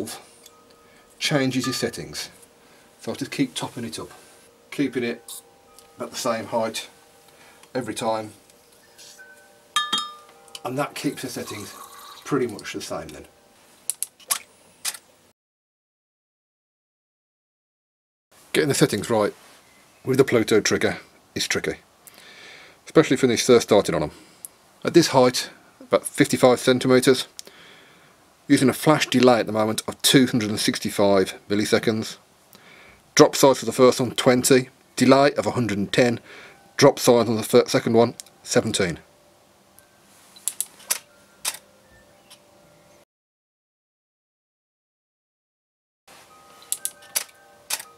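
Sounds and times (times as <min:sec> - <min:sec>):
sharp mechanical clicks: 0:40.5 - 0:41.6, 0:46.7 - 0:47.9.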